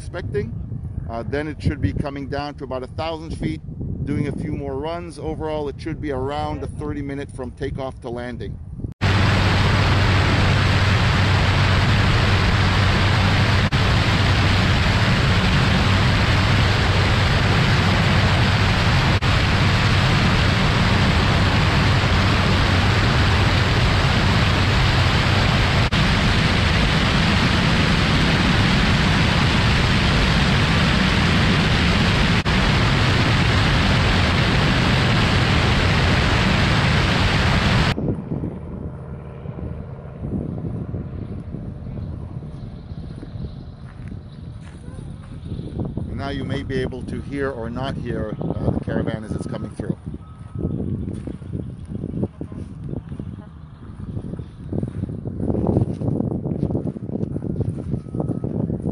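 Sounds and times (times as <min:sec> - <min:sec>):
outdoor wind noise: 0:00.0 - 0:58.9
propeller aircraft engine hum: 0:08.6 - 0:58.9
airflow rushing hiss: 0:09.0 - 0:38.0.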